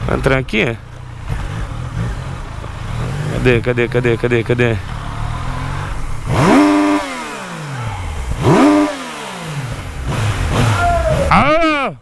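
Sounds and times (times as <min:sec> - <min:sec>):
motorcycle engine at low revs: 0:00.0 - 0:11.6.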